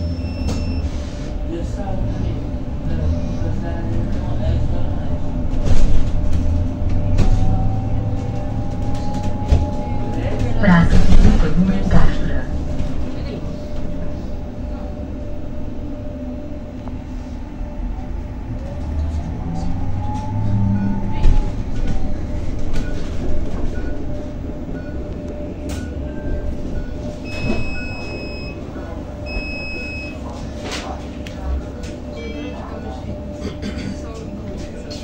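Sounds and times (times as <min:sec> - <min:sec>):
bus road rumble: 0:00.0 - 0:35.0.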